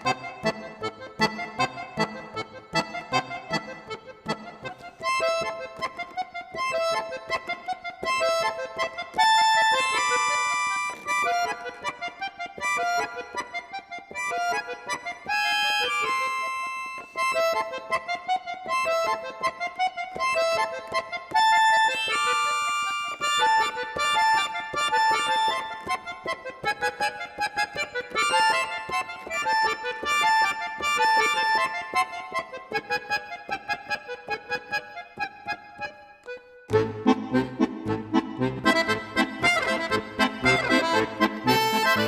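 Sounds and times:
accordion playing classical piece: 0:00.0 - 0:42.0.

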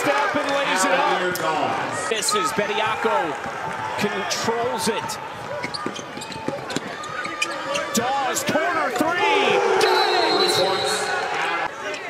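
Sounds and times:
arena crowd noise: 0:00.0 - 0:12.0
sneakers squeaking: 0:04.7 - 0:08.1.

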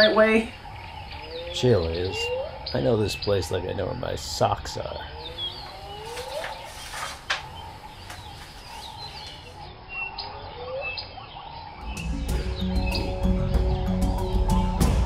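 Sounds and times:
birds chirping: 0:00.0 - 0:15.0
low rhythmic music: 0:11.8 - 0:15.0.

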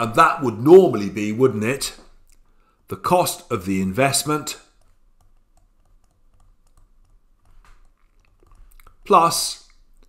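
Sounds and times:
stylus tapping on tablet screen: 0:04.7 - 0:09.0.

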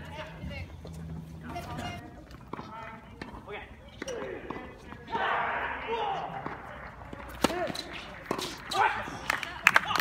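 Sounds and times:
tennis ball bouncing on court: 0:06.3 - 0:08.8.

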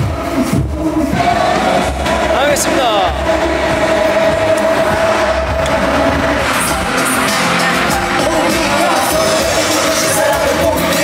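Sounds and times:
crowd noise: 0:00.0 - 0:11.0
loud live concert music: 0:00.0 - 0:11.0.

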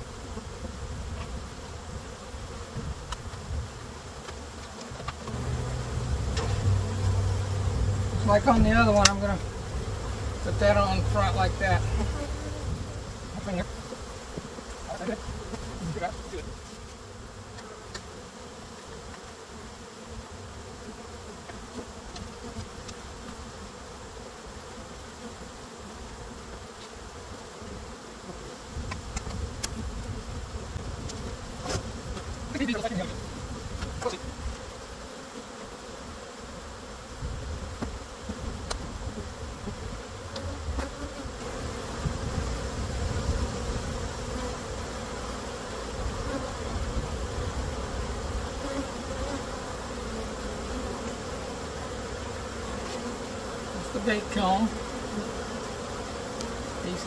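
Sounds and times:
bees buzzing: 0:00.0 - 0:57.0.

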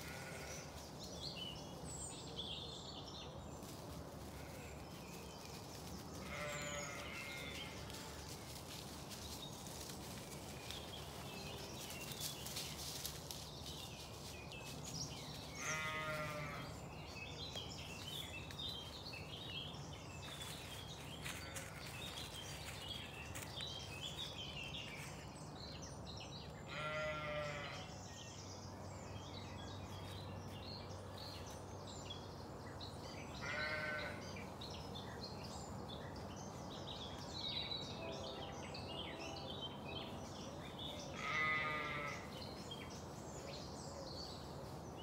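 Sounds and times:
sheep bleating: 0:00.0 - 0:00.7, 0:06.2 - 0:08.1, 0:15.6 - 0:16.8, 0:26.7 - 0:27.9, 0:33.4 - 0:34.2, 0:41.1 - 0:42.3
birds chirping and singing: 0:00.0 - 0:45.0
bird chirping: 0:04.7 - 0:07.8.

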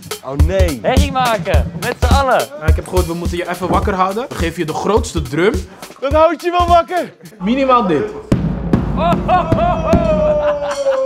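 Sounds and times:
bass drum booms: 0:00.2 - 0:05.4, 0:08.2 - 0:10.6.

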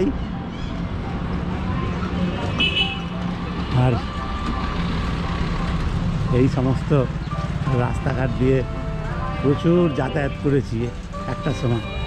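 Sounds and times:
passers-by voices: 0:00.0 - 0:12.0
street traffic rumble: 0:00.0 - 0:12.0.

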